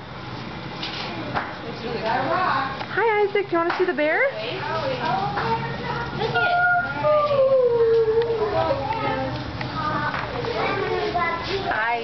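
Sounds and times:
murmur of voices: 0:04.3 - 0:12.0
child howling: 0:06.2 - 0:10.1.

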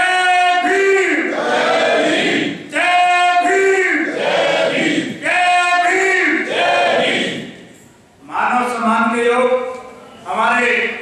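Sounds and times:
man shouting into microphone: 0:00.0 - 0:01.3, 0:02.7 - 0:04.2, 0:05.0 - 0:06.5
crowd shouting in unison: 0:00.7 - 0:02.6, 0:03.4 - 0:07.5.

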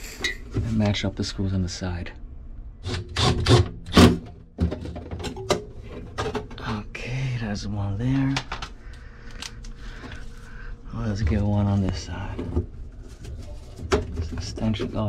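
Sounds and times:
metal cover knocking and clattering: 0:04.2 - 0:06.6.

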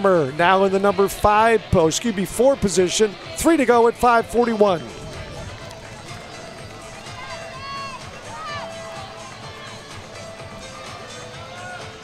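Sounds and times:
crowd sounds: 0:00.0 - 0:12.0
distant voices: 0:00.0 - 0:12.0
music playing: 0:00.0 - 0:12.0.

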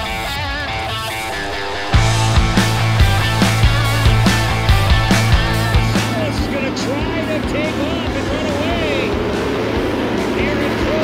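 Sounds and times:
rock music with drums: 0:01.1 - 0:11.0.

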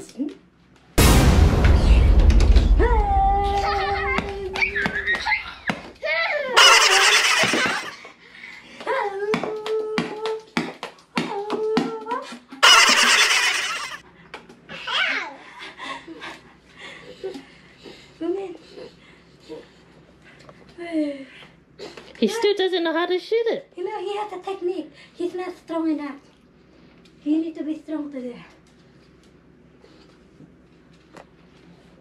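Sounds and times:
loud noisy bursts: 0:01.0 - 0:05.4, 0:06.6 - 0:07.9, 0:12.6 - 0:14.0
toddler laughing: 0:03.8 - 0:05.8, 0:06.6 - 0:08.0, 0:12.6 - 0:14.0.

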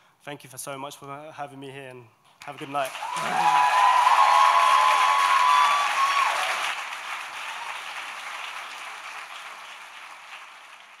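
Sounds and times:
large audience applauding: 0:02.6 - 0:11.0.

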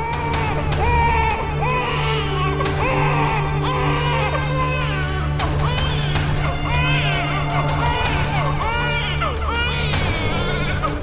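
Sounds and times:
background music with low drone: 0:00.0 - 0:11.0
infant crying: 0:00.0 - 0:11.0.

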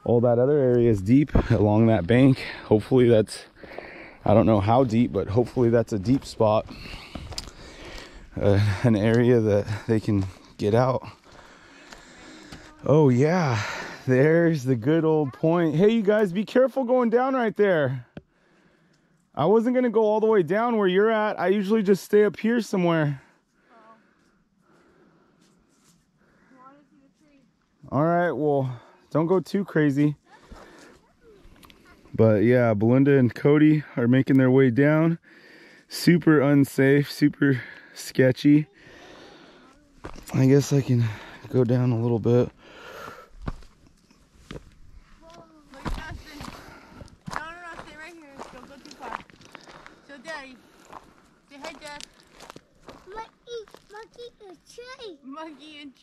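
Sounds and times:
footsteps crunching on dirt: 0:03.5 - 0:12.8, 0:39.9 - 0:41.5, 0:42.4 - 0:54.4.

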